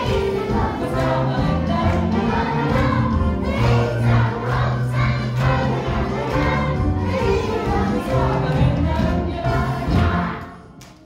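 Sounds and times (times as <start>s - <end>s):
group singing along: 0.0s - 10.7s.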